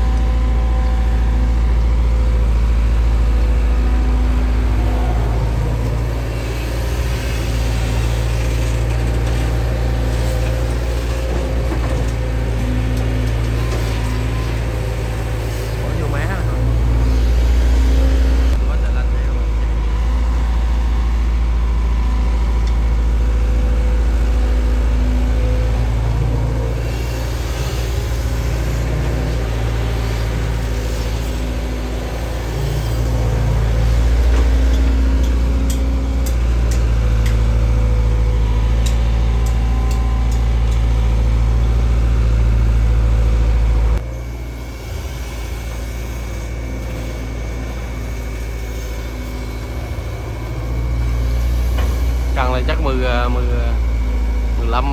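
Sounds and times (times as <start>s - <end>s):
excavator diesel engine running: 0.0s - 54.9s.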